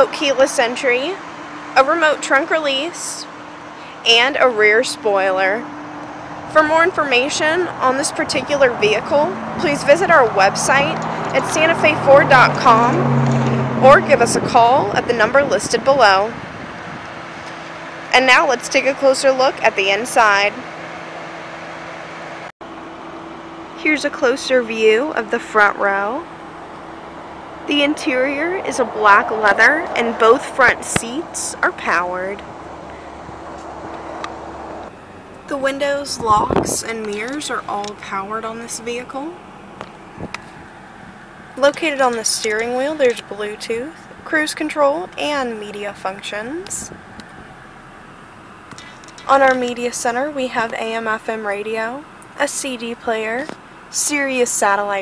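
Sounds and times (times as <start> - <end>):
low even hum: 22.8 - 40.6.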